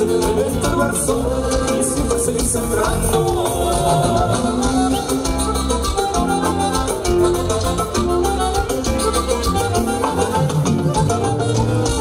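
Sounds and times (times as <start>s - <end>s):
live band playing latin dance music: 0.0s - 12.0s.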